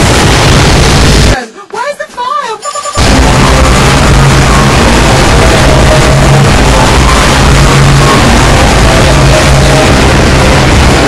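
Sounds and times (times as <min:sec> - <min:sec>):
distorted overlapping remix music: 0:00.0 - 0:01.4, 0:02.9 - 0:11.0.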